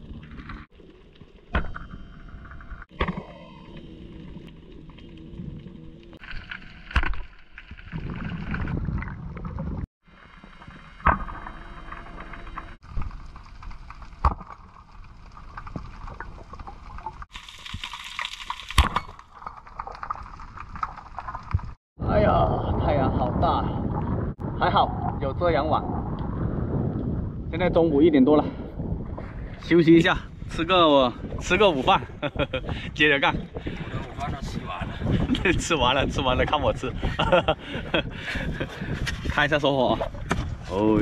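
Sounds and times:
muffled underwater water noise: 0.0s - 27.4s.

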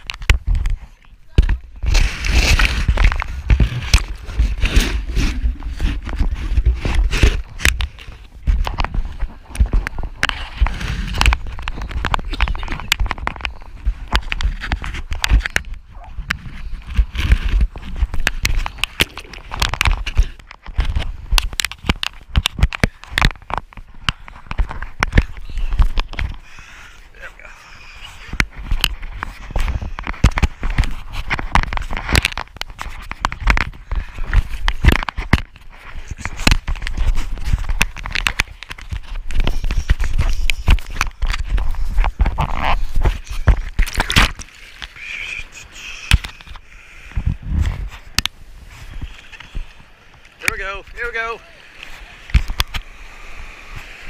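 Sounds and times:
wind on microphone: 0.0s - 54.0s.

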